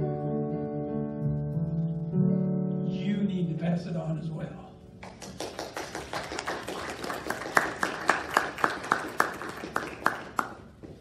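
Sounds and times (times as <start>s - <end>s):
people clapping unevenly: 5.0s - 11.0s.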